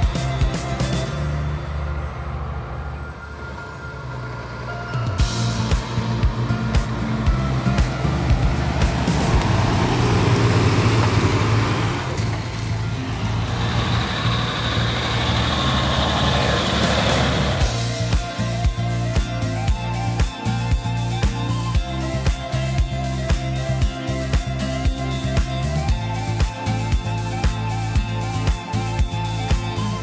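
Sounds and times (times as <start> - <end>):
log truck driving past: 0.0 - 30.0.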